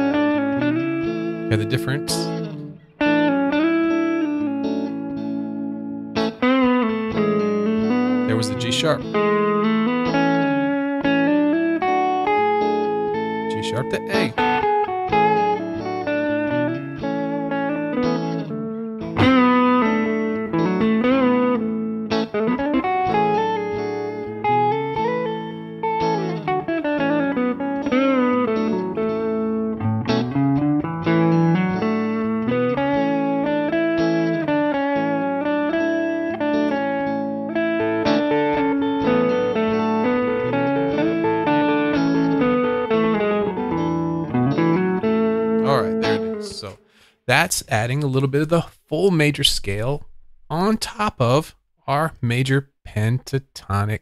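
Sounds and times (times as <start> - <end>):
guitar melody: 0.0 - 51.4.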